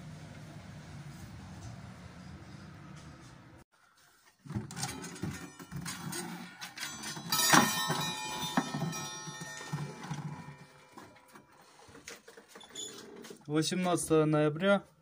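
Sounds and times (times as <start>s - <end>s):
clock chime ringing: 6.4s - 11.6s.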